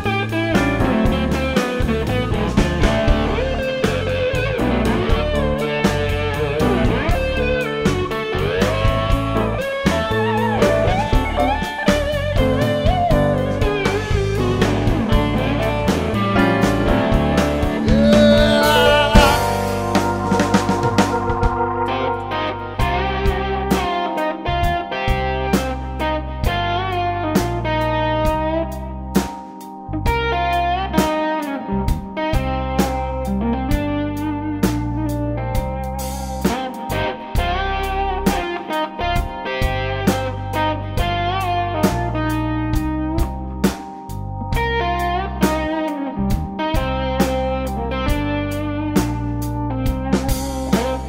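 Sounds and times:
electric guitar lead lines: 0.0 - 51.0
drum kit steady beat: 0.2 - 21.8, 36.0 - 36.8, 49.9 - 51.0
sustained organ chords: 3.1 - 26.4.

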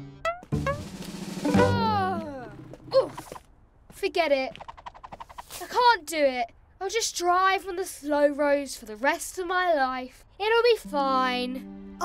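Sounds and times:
tone sliding downward: 0.3 - 2.4
sharp accent: 0.3 - 3.2
drum-roll rattle: 0.6 - 1.9.

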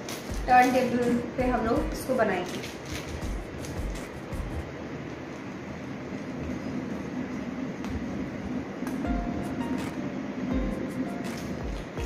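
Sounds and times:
faint background music: 0.0 - 4.7, 7.8 - 12.0
low rumbling hum: 0.3 - 12.0.

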